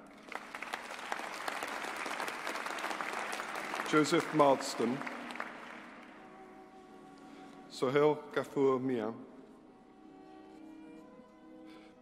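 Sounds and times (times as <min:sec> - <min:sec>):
large audience applauding: 0:00.0 - 0:06.3.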